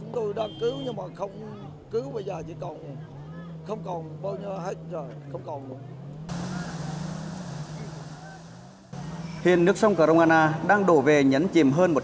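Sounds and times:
low engine-like hum: 0:01.6 - 0:10.7.

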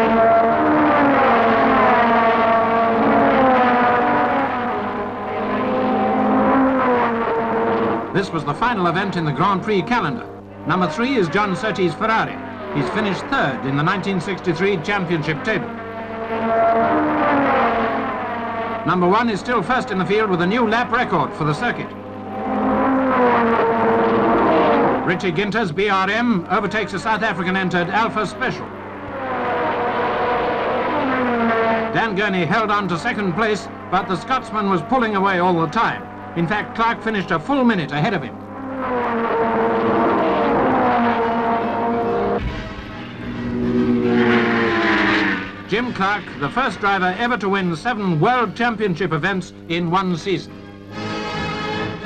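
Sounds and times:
racing car engine passing: 0:00.0 - 0:48.6, 0:50.5 - 0:52.0.

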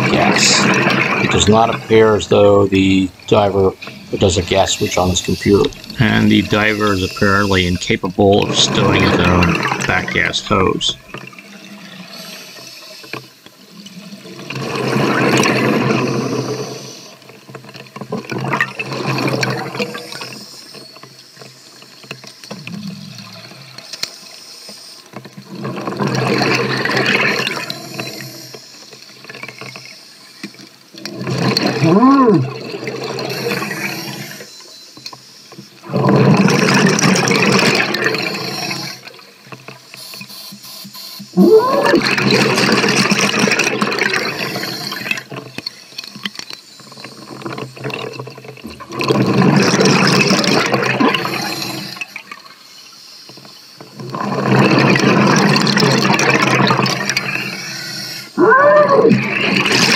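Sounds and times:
scuba exhale bubbles: 0:35.8 - 0:39.2, 0:41.4 - 0:45.3, 0:48.7 - 0:52.2, 0:54.0 - 0:59.9.

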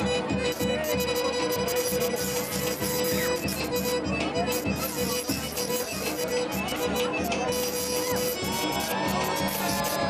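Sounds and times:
folk dance music band: 0:00.0 - 0:10.0
violin: 0:00.0 - 0:10.0.

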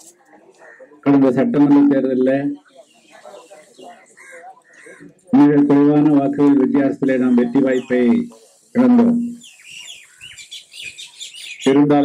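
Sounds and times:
man speaking: 0:00.7 - 0:04.1, 0:05.0 - 0:09.4, 0:11.6 - 0:12.0
small birds chirping: 0:02.4 - 0:05.3, 0:07.1 - 0:08.6, 0:09.3 - 0:12.0.

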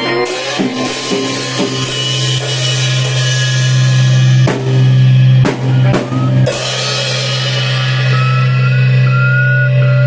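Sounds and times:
high wavering feedback whine: 0:06.1 - 0:10.0.

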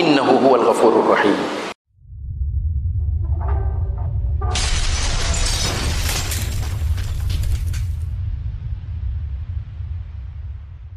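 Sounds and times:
deep steady rumble: 0:01.9 - 0:10.9
wall shattering crash: 0:04.5 - 0:08.1.

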